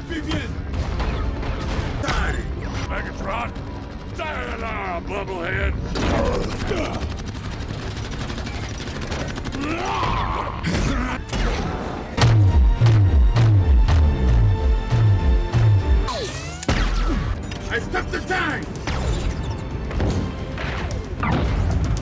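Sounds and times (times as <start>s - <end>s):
heavy pulsing low beat: 12.2s - 16.1s.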